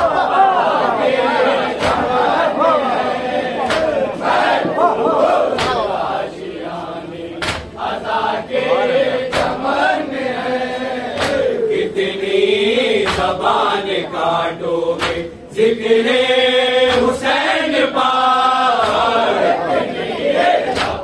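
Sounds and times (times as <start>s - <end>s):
men chanting devotional verse: 0.0s - 21.0s
sharp chest slaps: 7.4s - 7.7s, 11.2s - 11.5s.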